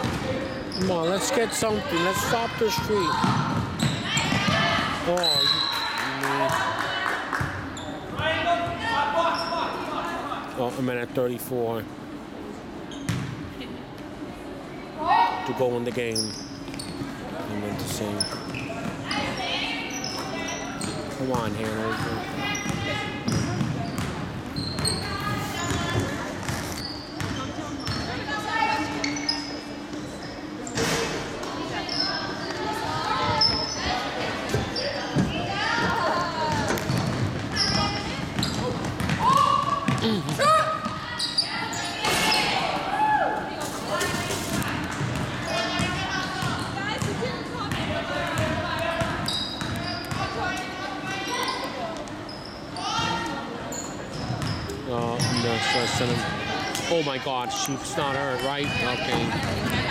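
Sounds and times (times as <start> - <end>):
voices calling and chattering: 0.0 - 59.9.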